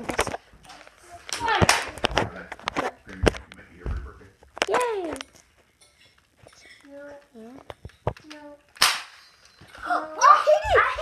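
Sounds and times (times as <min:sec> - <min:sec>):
quiet child voices: 0:00.7 - 0:02.4, 0:08.2 - 0:08.7, 0:09.8 - 0:11.0.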